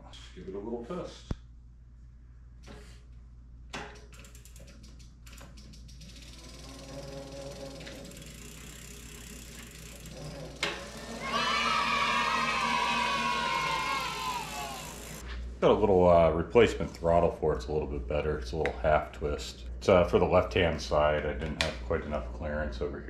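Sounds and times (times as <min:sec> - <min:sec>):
electric bike motor whine: 0:06.0 - 0:15.2.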